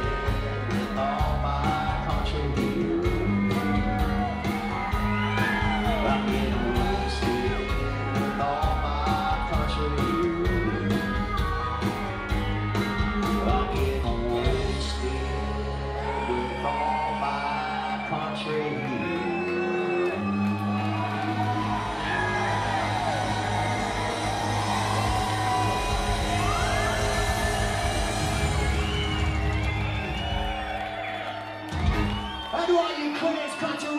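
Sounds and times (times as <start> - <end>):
upright bass notes: 0.0 - 17.2, 20.5 - 30.6.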